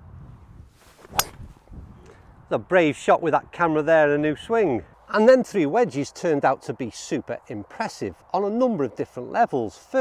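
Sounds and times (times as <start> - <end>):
golf club striking ball: 1.0 - 1.5.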